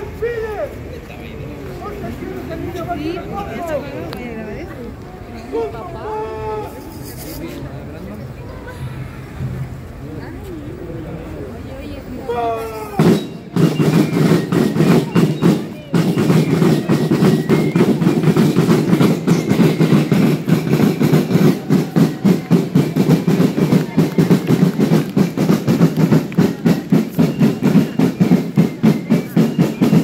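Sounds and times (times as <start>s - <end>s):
snare drums playing march beat: 13.0s - 30.0s.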